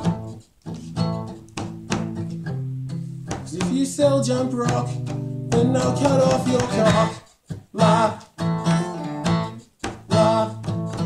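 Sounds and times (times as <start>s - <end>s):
acoustic guitar strumming: 0.0s - 11.0s
person singing: 3.5s - 11.0s.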